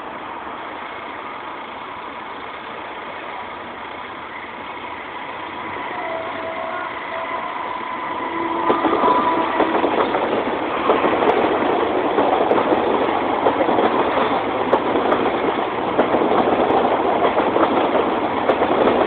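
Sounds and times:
passenger train approaching: 0.0s - 19.0s
train wheels clacking on rails: 0.6s - 19.0s.

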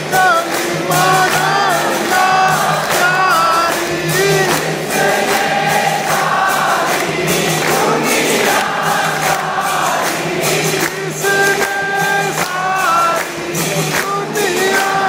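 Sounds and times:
people singing in chorus: 0.0s - 15.0s
rhythmic hand-clapping: 0.0s - 15.0s.

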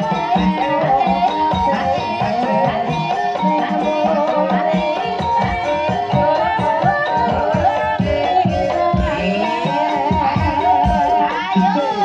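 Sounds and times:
regular drum beats: 0.0s - 12.0s.

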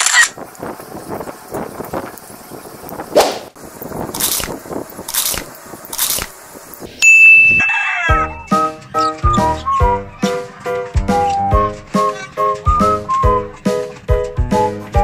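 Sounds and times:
short noisy bursts: 3.3s - 6.7s
bright ding: 7.0s - 8.6s
music tune of short notes: 7.0s - 15.0s.

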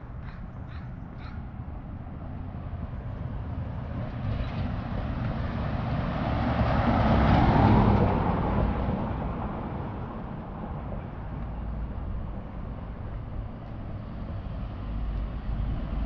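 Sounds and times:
van driving past: 3.3s - 10.4s.

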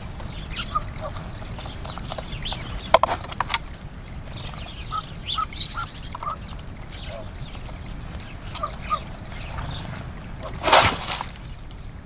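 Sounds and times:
high sparrow chirps: 0.0s - 3.1s, 4.0s - 10.6s.

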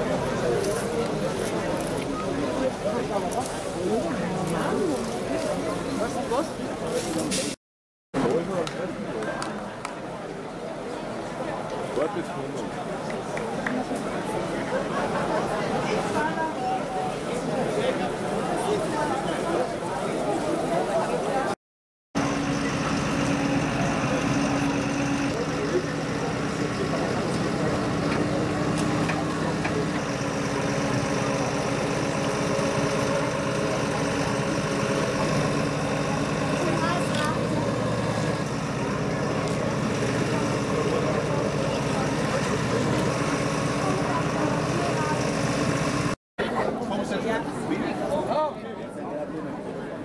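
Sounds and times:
voices in background: 0.0s - 7.6s, 22.2s - 50.0s
diesel engine idling: 22.2s - 46.2s.

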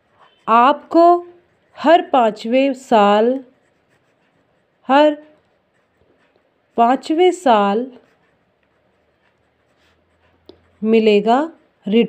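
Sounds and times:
ballpoint pen scratching paper: 0.0s - 11.9s.

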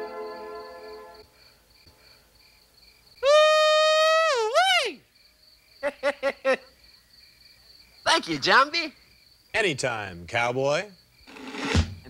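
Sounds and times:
crickets chirping: 0.0s - 12.0s
loud whooping call: 3.2s - 5.0s.

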